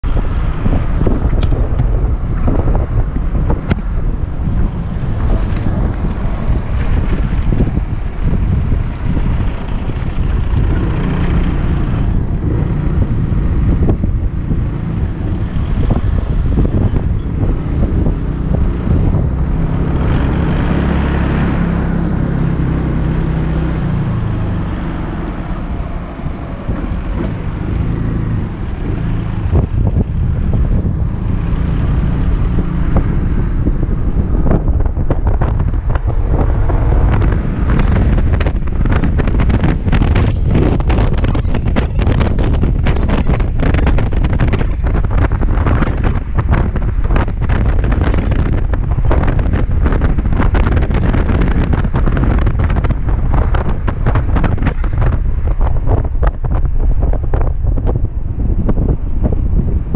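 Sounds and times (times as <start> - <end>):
wind buffeting on microphone: 0.0 - 59.9.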